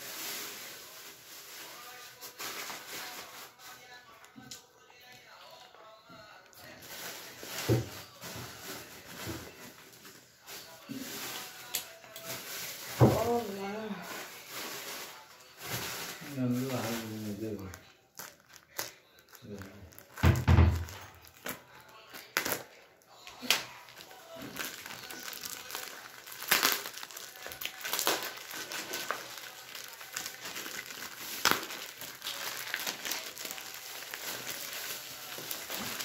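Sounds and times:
sharp plastic crackle: 10.4s - 36.0s
plastic mailer crinkling: 15.9s - 22.6s, 23.4s - 36.0s.

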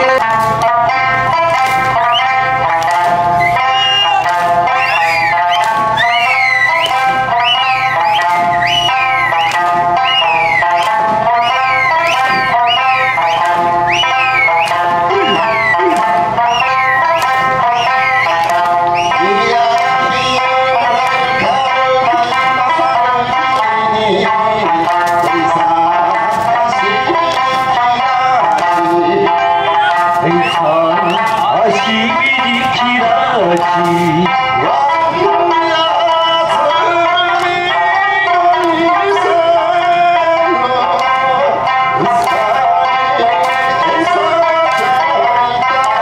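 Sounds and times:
taiko drum strikes: 0.0s - 35.7s
plucked string melody: 0.0s - 46.0s
high falling whistles: 3.4s - 4.2s, 4.8s - 19.2s.

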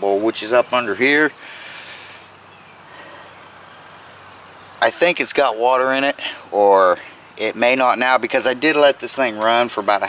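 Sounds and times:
man speaking: 0.0s - 1.4s, 4.8s - 10.0s
outdoor background hiss: 0.0s - 10.0s.

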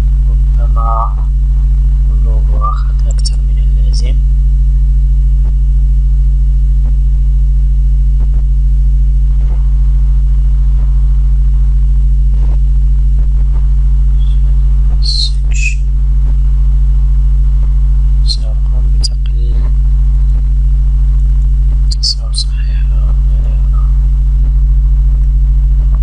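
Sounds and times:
low electrical mains hum: 0.0s - 26.0s.

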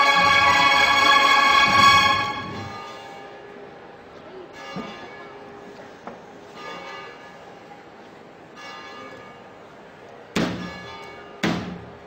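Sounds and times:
bell tolling: 0.0s - 3.6s.

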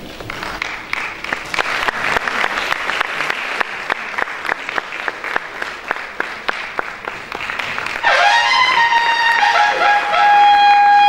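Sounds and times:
trumpet melody with held high note: 8.0s - 11.0s.

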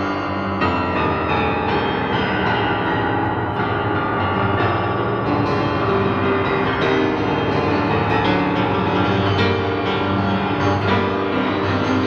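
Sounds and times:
upright piano chords: 0.0s - 12.0s.

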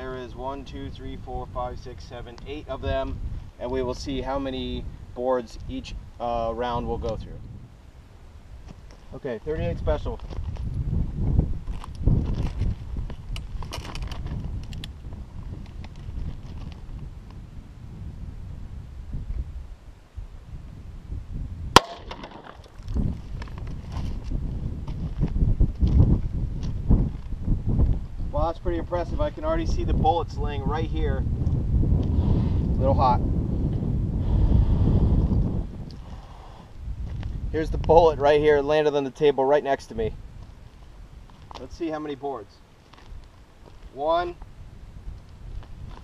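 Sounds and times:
wind buffeting microphone: 0.0s - 39.0s, 39.6s - 46.0s
handling rustles and clicks: 11.7s - 15.0s
revolver gunshot: 21.8s - 22.5s.

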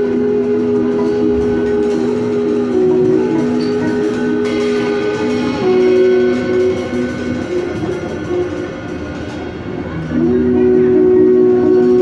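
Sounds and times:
free jazz ensemble playing: 0.0s - 12.0s.

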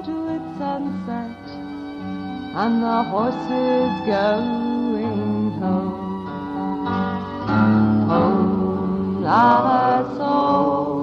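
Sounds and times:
acoustic guitar: 0.0s - 11.0s
fiddle: 0.0s - 11.0s.

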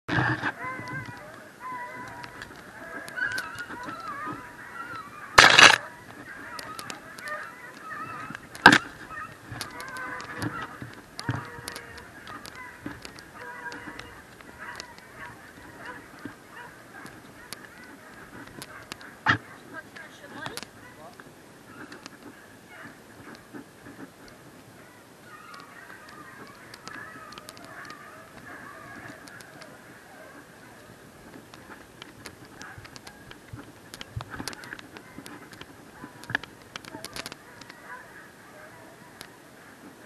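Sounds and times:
hounds baying: 0.1s - 40.0s
sharp cracks: 5.3s - 22.3s.

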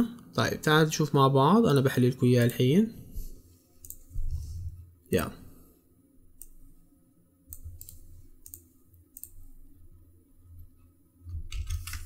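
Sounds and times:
computer mouse clicks: 3.8s - 4.1s, 6.4s - 6.6s, 7.5s - 9.4s, 11.4s - 12.0s.

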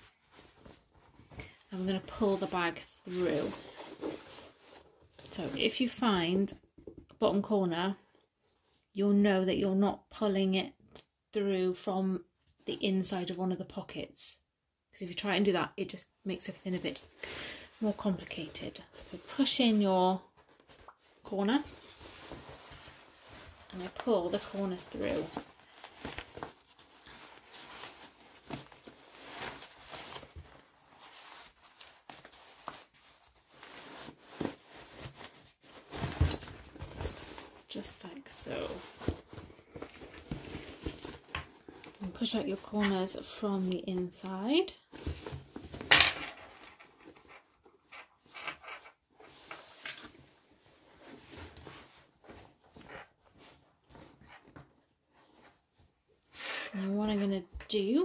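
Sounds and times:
fabric rustling: 0.0s - 5.7s, 17.8s - 43.8s.

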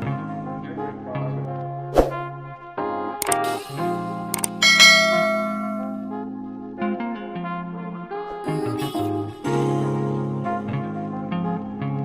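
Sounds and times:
soft background music: 0.0s - 12.0s
mouse clicks: 3.2s - 3.4s
bright bell ding: 4.6s - 6.1s.

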